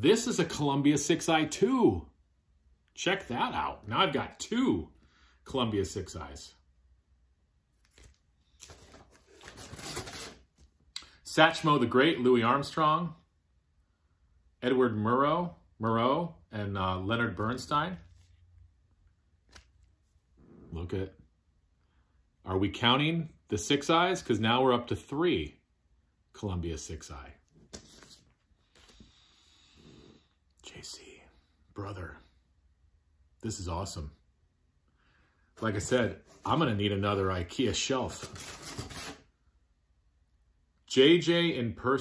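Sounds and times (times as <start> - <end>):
man speaking: 0.0 - 2.1, 3.0 - 6.6, 14.6 - 18.1, 20.7 - 21.2, 26.3 - 27.4, 30.6 - 32.4, 33.4 - 34.3, 35.6 - 38.3, 40.9 - 42.0
record sleeves rustling and sliding: 7.8 - 10.8, 19.4 - 20.2, 27.5 - 29.0, 38.0 - 39.2
man breathing through nose: 28.7 - 30.4.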